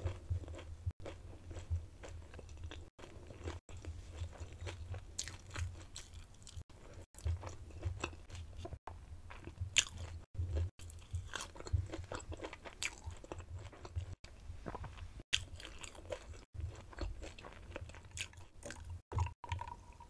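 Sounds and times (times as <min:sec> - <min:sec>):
crunchy food being chewed: 0:00.0 - 0:19.8.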